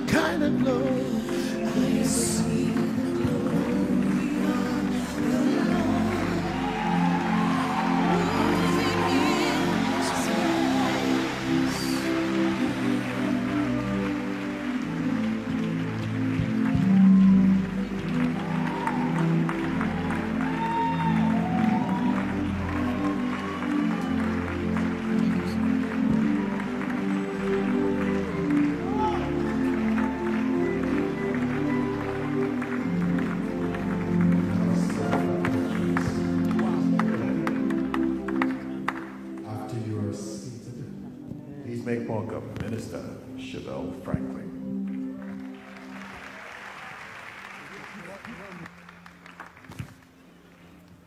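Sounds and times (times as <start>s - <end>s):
congregation voices: 0.0s - 15.4s, 32.2s - 44.6s
keyboard chords and bass: 0.0s - 45.4s.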